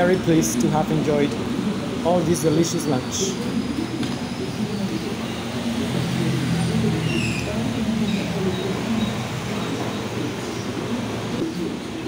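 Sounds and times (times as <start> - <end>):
indistinct voices: 0.0 - 12.0
low rumble of street traffic: 0.0 - 12.0.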